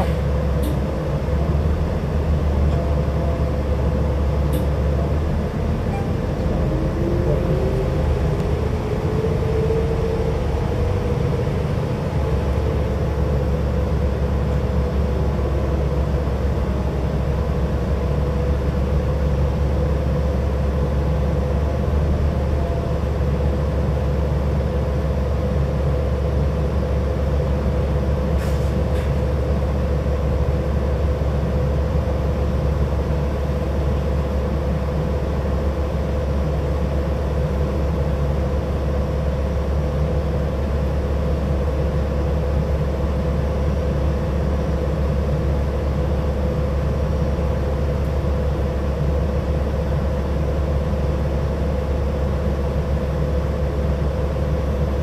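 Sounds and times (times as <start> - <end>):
bus engine drone: 0.0 - 55.0.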